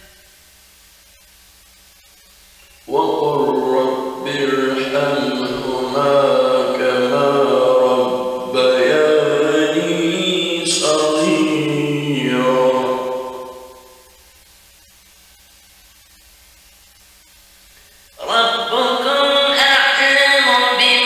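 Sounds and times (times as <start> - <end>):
faint steady hiss: 0.0 - 21.0
man chanting melodically: 2.8 - 14.0, 18.2 - 21.0.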